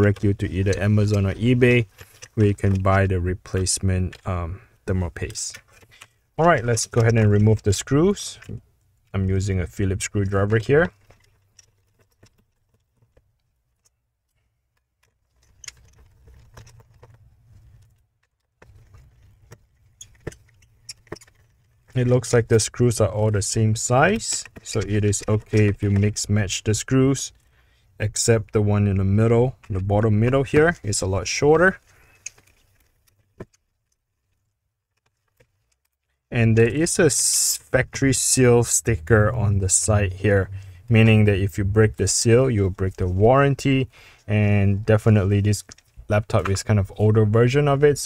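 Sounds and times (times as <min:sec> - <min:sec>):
low hum: 0:36.4 - 0:43.1.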